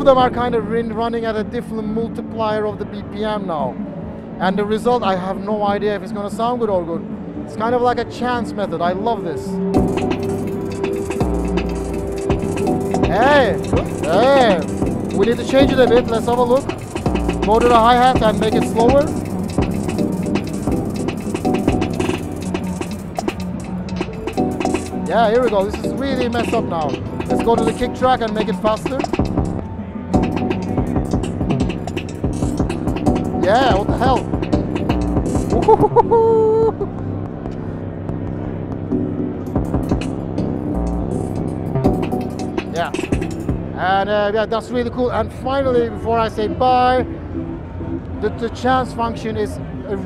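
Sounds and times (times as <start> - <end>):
electronic drum beat: 9.8 - 29.6, 30.2 - 36.0, 38.9 - 43.7
held synth tones: 9.8 - 36.2
person laughing: 35.5 - 36.9.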